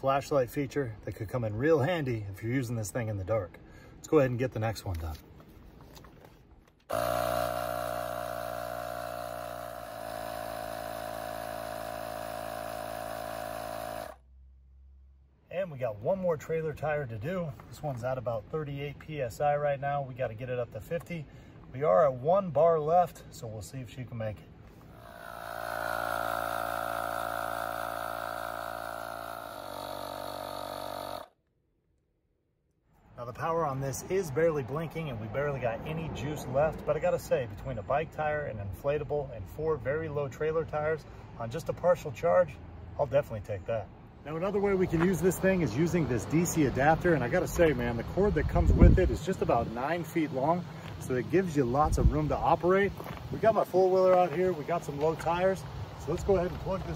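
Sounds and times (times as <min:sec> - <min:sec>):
tire inflator compressor running: 0:06.9 - 0:14.4, 0:24.8 - 0:31.4, 0:44.4 - 0:56.9.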